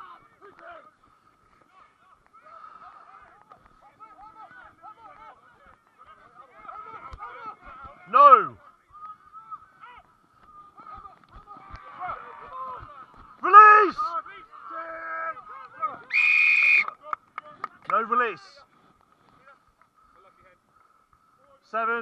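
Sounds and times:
players shouting calls: 0.0s - 18.5s
referee's whistle: 16.1s - 16.9s.

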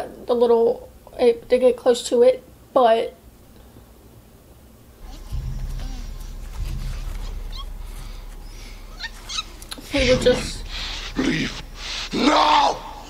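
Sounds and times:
low rumble: 5.0s - 13.0s.

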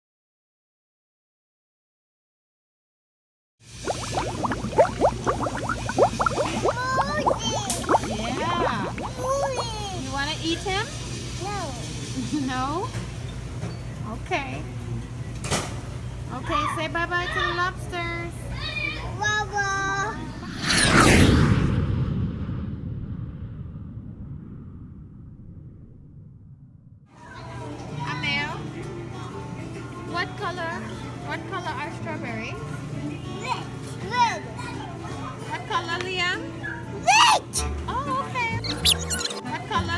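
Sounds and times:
water bubbling in a tank: 3.6s - 10.0s
whoosh with falling sweep: 20.2s - 26.8s
long rumble: 20.4s - 27.0s.

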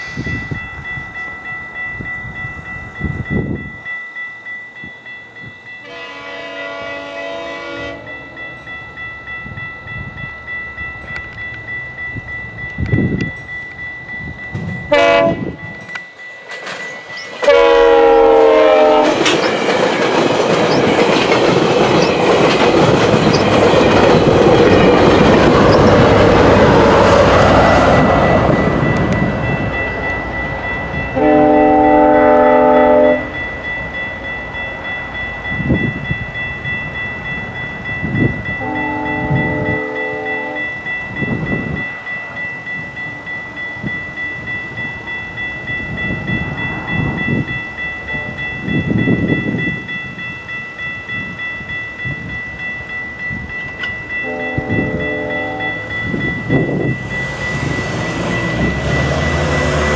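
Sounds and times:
level-crossing warning bell ringing: 0.0s - 59.9s
locomotive chime horn blasts: 5.8s - 8.7s, 14.9s - 15.8s, 17.4s - 19.3s, 31.1s - 33.4s, 38.6s - 40.8s, 48.1s - 48.5s, 54.1s - 57.0s.

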